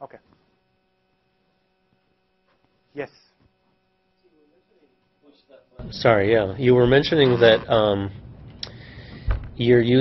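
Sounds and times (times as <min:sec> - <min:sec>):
faint electrical hum: 0:00.0 - 0:10.0
man speaking: 0:04.6 - 0:08.2.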